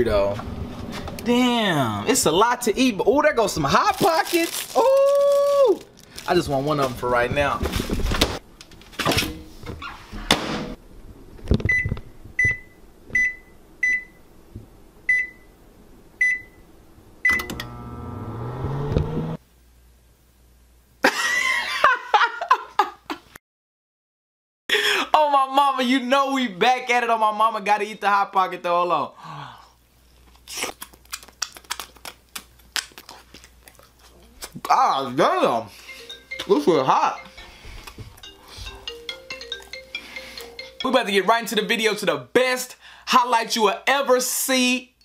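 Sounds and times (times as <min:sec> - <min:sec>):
thud: 0:10.2 - 0:10.8
microwave oven humming: 0:16.2 - 0:19.4
person chewing with crunching: 0:30.2 - 0:34.6.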